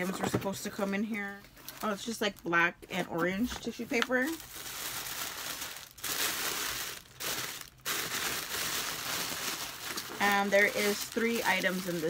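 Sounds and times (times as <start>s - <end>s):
tissue paper crumpling: 4.2s - 12.0s.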